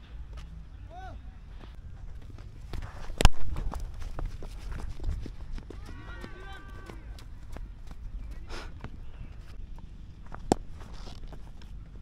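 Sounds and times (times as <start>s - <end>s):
distant drawn-out shout: 0.8s - 1.5s, 5.7s - 7.8s
running footsteps: 1.6s - 9.6s.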